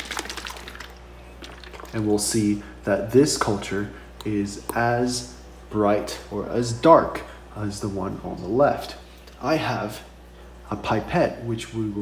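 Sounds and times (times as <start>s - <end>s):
liquid sloshing in plastic bottle: 0.0s - 2.0s.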